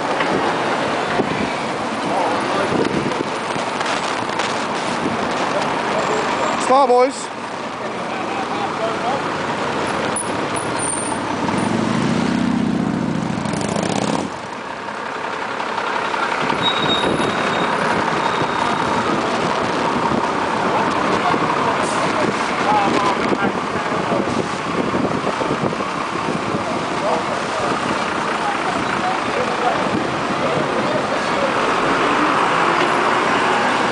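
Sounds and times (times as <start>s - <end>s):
passers-by chatter: 0.0s - 11.9s, 14.4s - 33.9s
street traffic: 0.0s - 33.9s.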